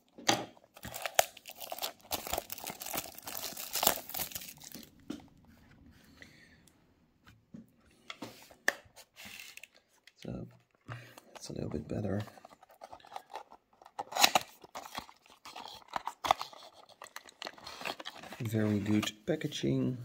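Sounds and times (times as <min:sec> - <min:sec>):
plastic shrink wrap crinkling and tearing: 0:00.7 - 0:05.0, 0:12.1 - 0:19.0.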